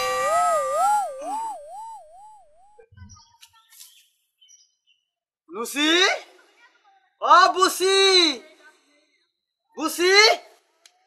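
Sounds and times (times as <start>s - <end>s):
cartoon wobbling tone: 0.0s - 2.8s.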